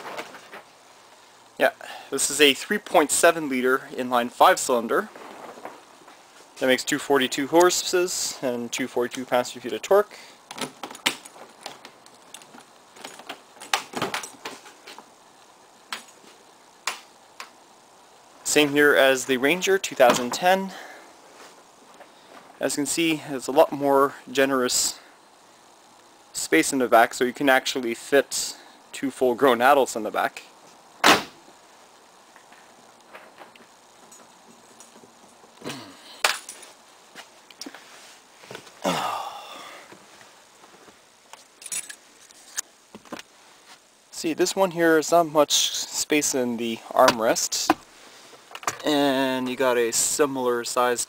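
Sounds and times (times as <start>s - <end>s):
keys jangling: 41.6s - 42.0s.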